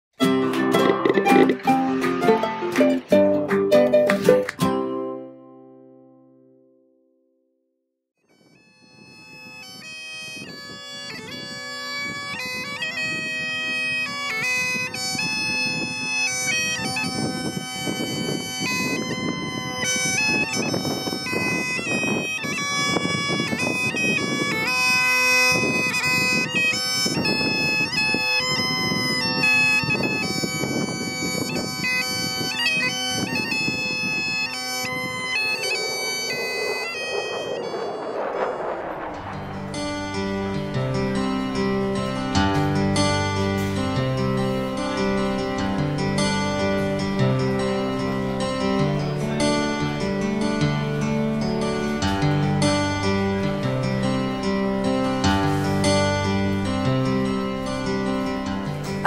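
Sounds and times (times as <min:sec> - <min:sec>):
bagpipe music: 0:00.2 - 0:04.5, 0:08.3 - 0:37.7.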